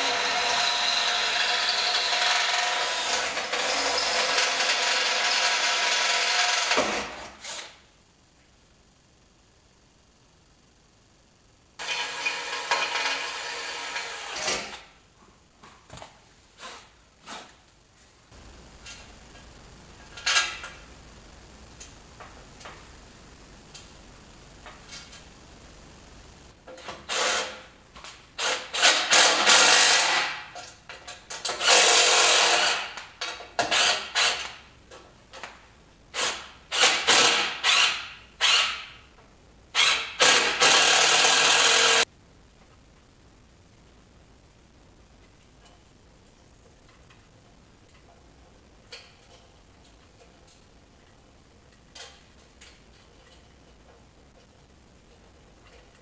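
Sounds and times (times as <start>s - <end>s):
cordless drill drilling metal: 0.0s - 6.8s, 31.6s - 32.8s, 36.2s - 38.9s, 39.8s - 42.0s
power tool bursts driving bolts: 0.0s - 7.6s, 28.4s - 30.3s, 31.4s - 33.0s, 36.1s - 38.9s, 39.8s - 42.0s.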